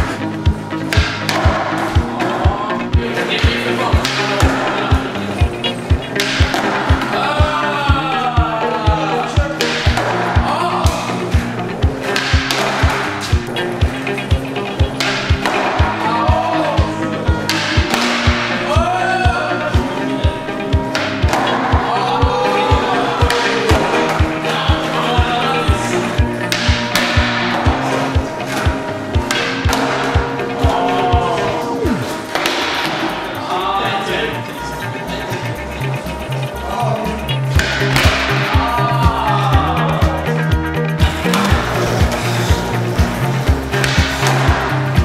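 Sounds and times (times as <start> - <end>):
music with steady beat: 0.0 - 45.0.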